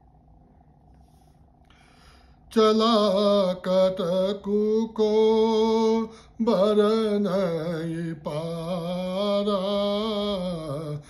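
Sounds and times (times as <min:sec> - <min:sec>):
faint low room hum: 0:00.0 - 0:11.0.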